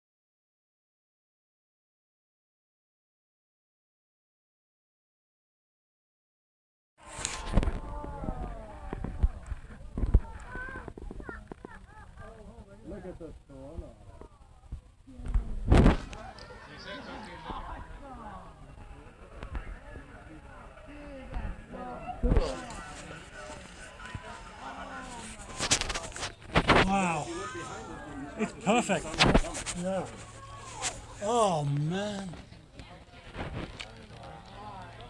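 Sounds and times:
faint background talk: 0:07.0 - 0:35.0.

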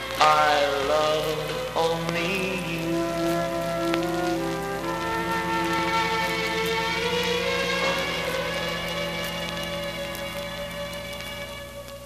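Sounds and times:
pop ballad on a record: 0:00.0 - 0:12.0
record surface crackle: 0:00.0 - 0:12.0.

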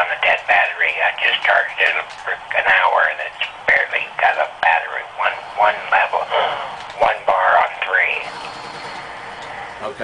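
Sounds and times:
person talking over telephone: 0:00.0 - 0:08.3.

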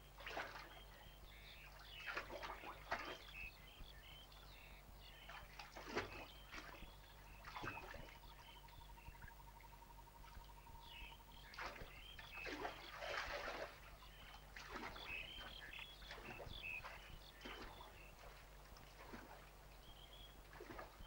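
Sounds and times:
water splashing by hand: 0:00.2 - 0:00.8, 0:01.7 - 0:03.4, 0:05.3 - 0:08.2, 0:11.5 - 0:21.0
bird chirps: 0:00.6 - 0:18.3.

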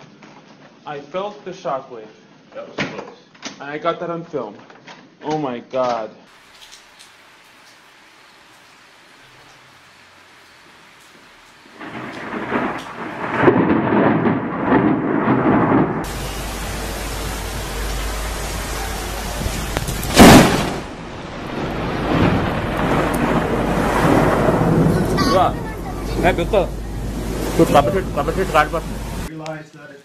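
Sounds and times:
heavy rain: 0:06.3 - 0:29.3
thunder rumbling: 0:11.2 - 0:29.3
loud thunderclap: 0:11.8 - 0:29.3.

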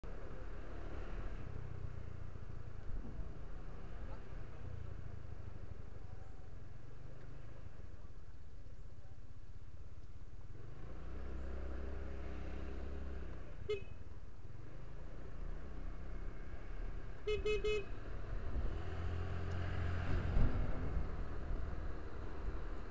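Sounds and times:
traffic engine rumble: 0:00.0 - 0:22.9
short horn beep: 0:17.3 - 0:17.9.

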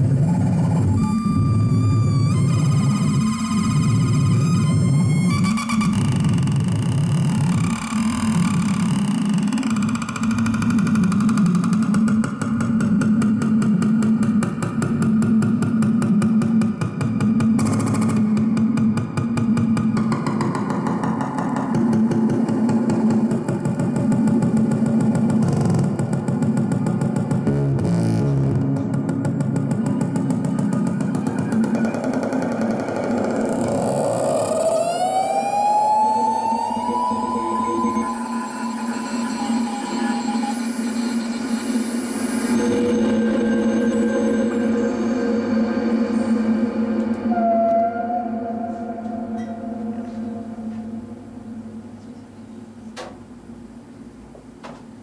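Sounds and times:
gliding synthesizer tones: 0:00.0 - 0:52.7
electronic noise drone: 0:00.0 - 0:52.8
steady low hum: 0:05.8 - 0:55.0.

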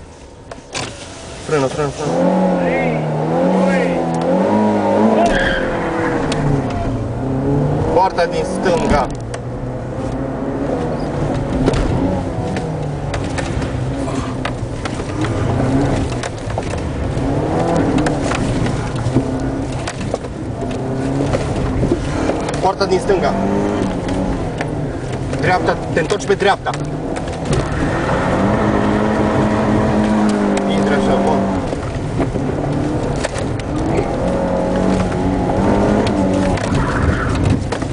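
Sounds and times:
car engine at speed: 0:00.0 - 0:37.9
road and wind noise: 0:00.0 - 0:37.9.

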